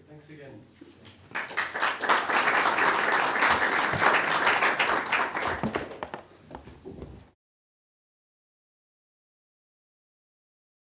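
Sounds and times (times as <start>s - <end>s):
audience applauding: 1.3s - 6.2s.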